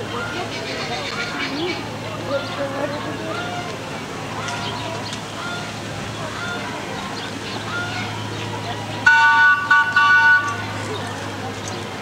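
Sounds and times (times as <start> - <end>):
horn honking: 9.0 - 10.6.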